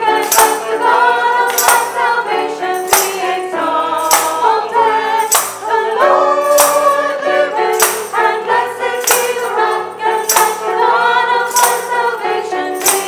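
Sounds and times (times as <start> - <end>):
choir singing a hymn: 0.0 - 13.0
sharp percussive beat: 4.0 - 9.6.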